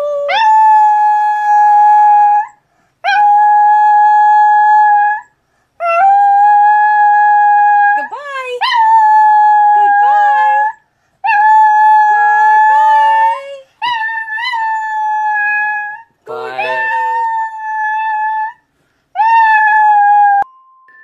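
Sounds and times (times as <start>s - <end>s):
dog howling: 8.6s - 18.6s, 19.2s - 20.5s
lower voice calling: 16.3s - 17.6s.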